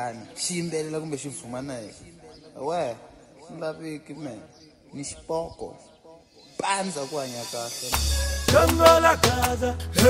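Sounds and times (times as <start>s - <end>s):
music with deep bass: 7.8s - 10.0s.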